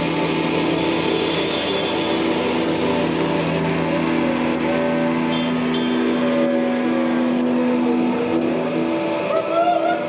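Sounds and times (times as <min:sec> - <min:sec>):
live band with distorted guitars: 0:00.0 - 0:10.0.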